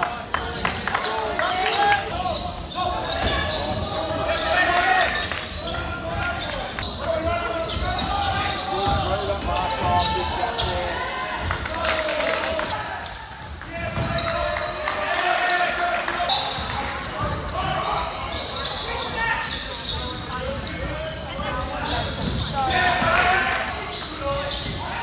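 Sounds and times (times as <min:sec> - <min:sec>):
basketball bouncing on court: 0:06.2 - 0:11.6, 0:13.3 - 0:14.7, 0:16.4 - 0:18.2.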